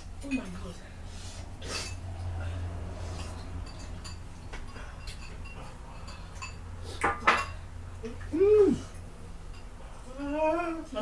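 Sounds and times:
forks clinking on ceramic bowls: 3.1 - 7.6, 9.5 - 9.8.

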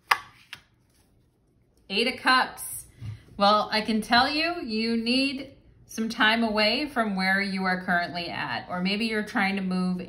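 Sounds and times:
card snap: 0.0 - 0.7.

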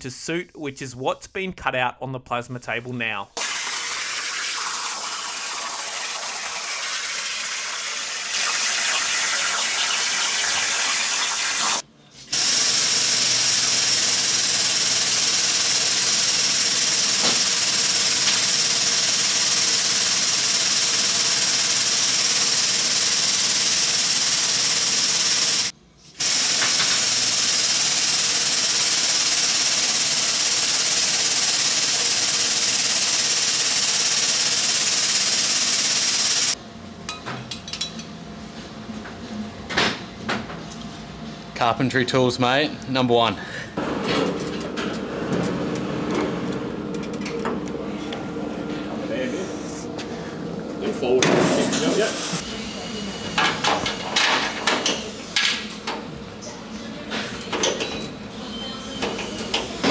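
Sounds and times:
plasma torch hissing: 3.4 - 11.8.

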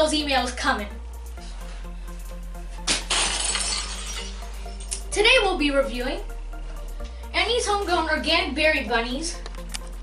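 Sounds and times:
background music: 0.0 - 10.0
glass shattering: 2.9 - 5.0.

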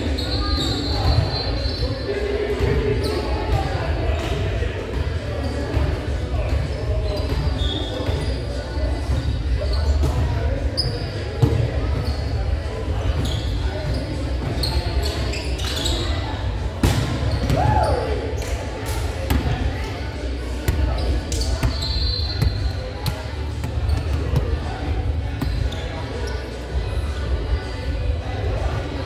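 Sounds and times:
sneaker squeaks: 0.0 - 3.6, 5.4 - 18.6, 20.6 - 26.7
players' voices: 0.0 - 29.0.

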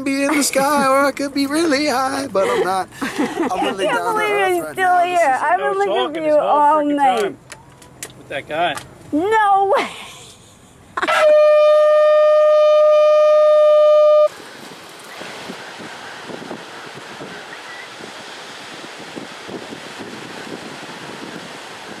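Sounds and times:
horn blowing long note: 11.1 - 14.3
wind noise on microphone: 11.2 - 22.0.

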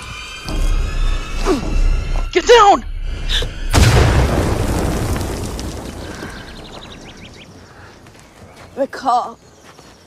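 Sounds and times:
grenade explosion: 3.7 - 6.9.

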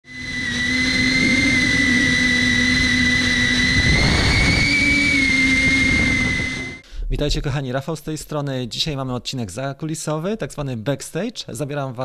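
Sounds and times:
drone propellers whining: 0.0 - 6.8.

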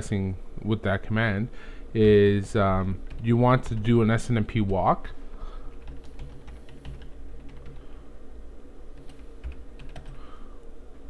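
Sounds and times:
steady low hum: 0.0 - 11.0
typing on computer keyboard: 5.8 - 7.8, 9.0 - 10.2.

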